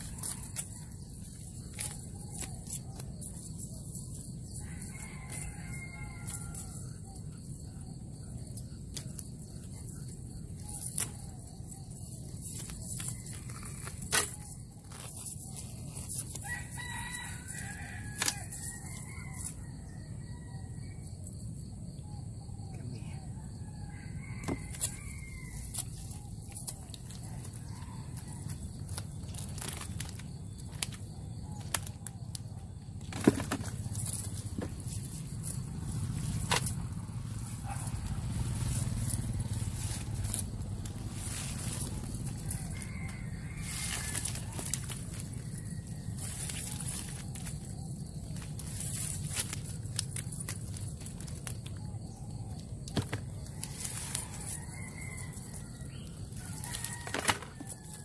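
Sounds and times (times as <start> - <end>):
rooster crowing: 4.5 - 7.2, 16.4 - 21.0, 23.4 - 26.2, 41.2 - 47.8, 53.6 - 58.0.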